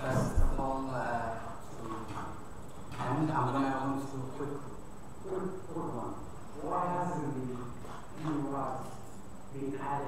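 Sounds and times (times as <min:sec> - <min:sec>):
man speaking: 0:00.0 - 0:02.3, 0:03.0 - 0:10.0.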